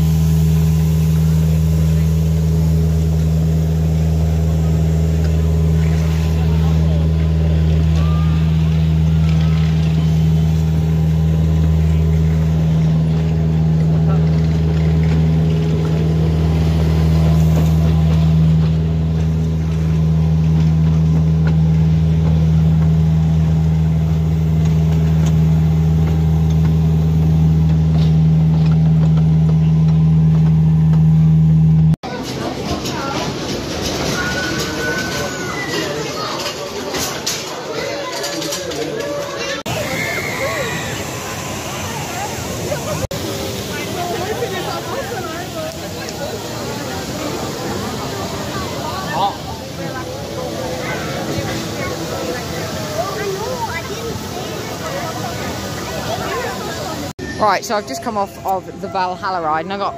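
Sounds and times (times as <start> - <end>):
miniature train engine drone: 0.0 - 59.9.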